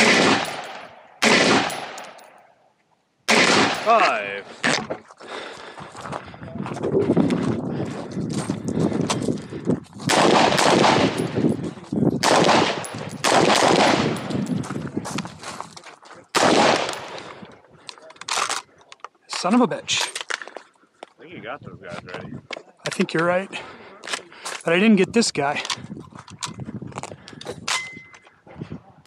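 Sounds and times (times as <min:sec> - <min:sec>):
rifle fire: 0:00.0 - 0:02.2, 0:03.3 - 0:04.0, 0:10.1 - 0:11.5, 0:12.2 - 0:14.6, 0:16.4 - 0:17.3.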